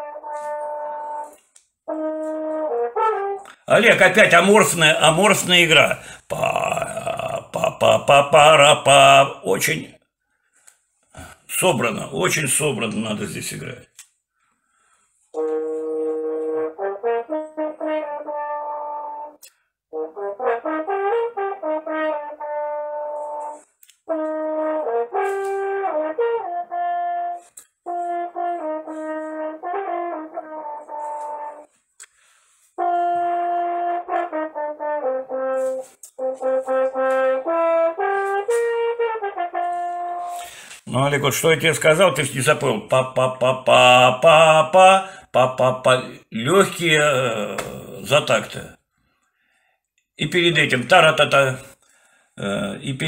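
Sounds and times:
french horn melodic solo: 0:00.0 - 0:03.6, 0:15.3 - 0:31.8, 0:32.7 - 0:40.6.

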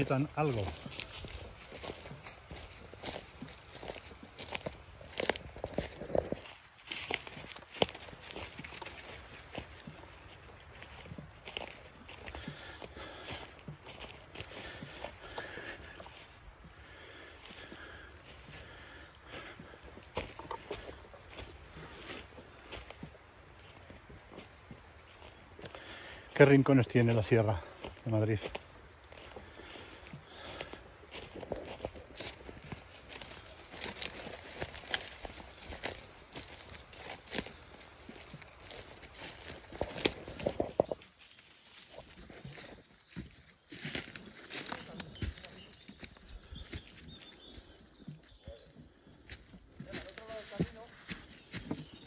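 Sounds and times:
footsteps on dry forest floor: 0:00.0 - 0:52.0.

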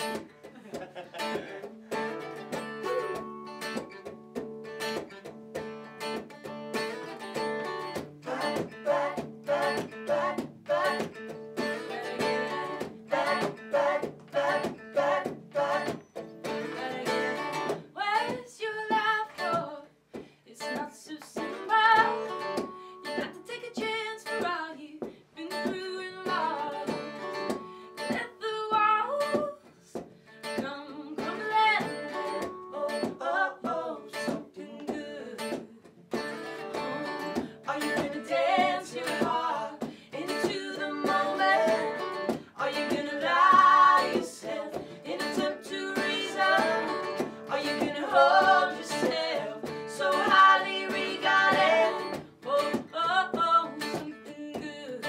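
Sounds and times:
acoustic guitars strumming: 0:00.0 - 0:19.8, 0:21.3 - 0:24.6, 0:25.5 - 0:55.0
woman singing lead vocal: 0:07.9 - 0:35.9, 0:36.7 - 0:55.0.

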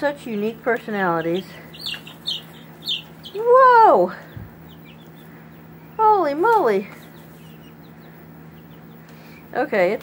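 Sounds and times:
chicks peeping: 0:00.0 - 0:10.0
steady low hum: 0:00.0 - 0:10.0.

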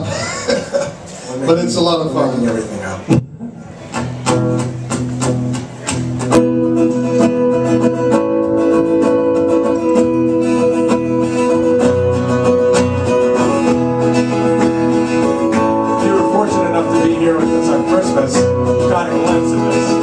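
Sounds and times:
acoustic guitars strumming chords: 0:03.0 - 0:20.0.

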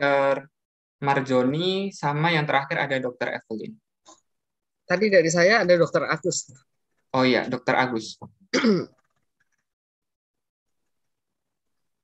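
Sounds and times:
person clearing throat: 0:08.5 - 0:09.0.

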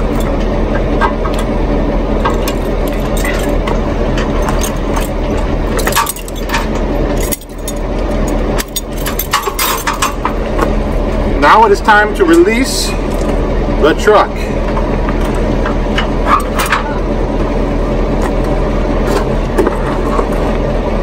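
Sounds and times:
vehicle engine idling hum: 0:00.0 - 0:21.0
metal chains clinking and rattling: 0:02.2 - 0:10.4.

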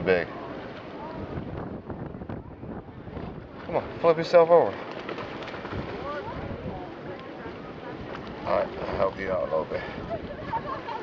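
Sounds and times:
faint voices: 0:00.0 - 0:11.0
sea waves at shore: 0:00.0 - 0:11.0
wind: 0:00.0 - 0:11.0.

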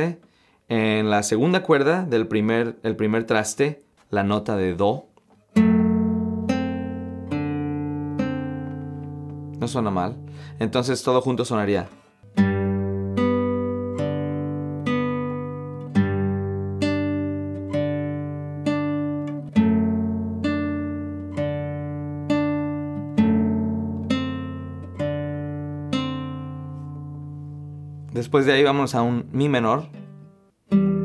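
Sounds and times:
classical guitar fingerpicked arpeggio: 0:05.4 - 0:31.0.

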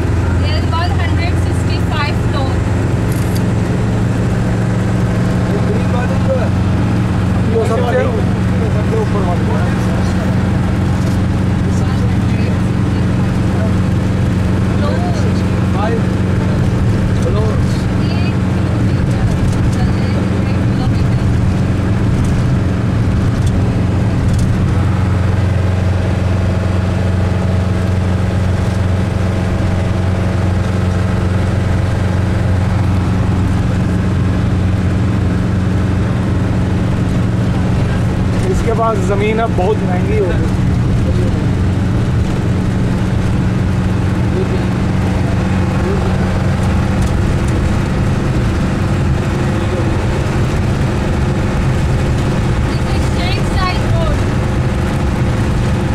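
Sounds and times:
vehicle engine and road noise: 0:00.0 - 0:55.9.

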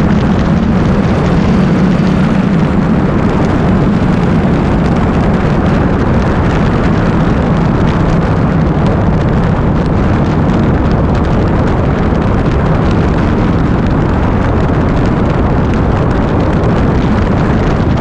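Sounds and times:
motorcycle engine droning: 0:00.0 - 0:18.0
wind rush on microphone: 0:00.0 - 0:18.0.

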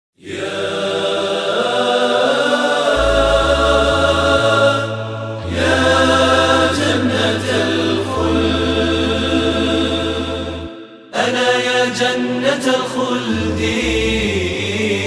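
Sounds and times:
layered voices chanting: 0:00.2 - 0:15.0
sustained low bass voices: 0:03.0 - 0:09.0.

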